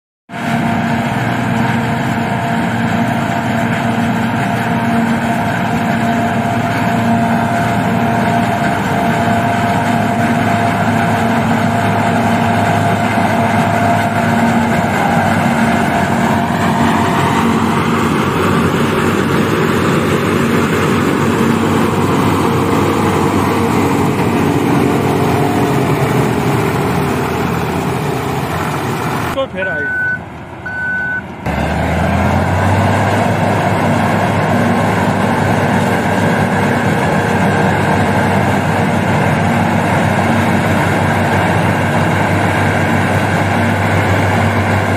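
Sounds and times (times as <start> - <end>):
forage harvester engine drone: 0.3 - 44.9
steady machine whine: 0.4 - 29.4.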